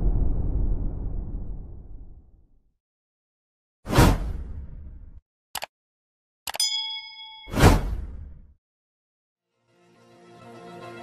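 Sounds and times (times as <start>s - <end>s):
bell-like ding: 6.6s - 7.8s.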